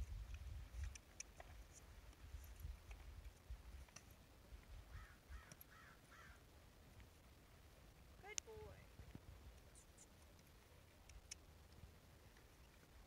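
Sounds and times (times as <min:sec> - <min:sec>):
crow cawing: 0:04.9 - 0:06.4.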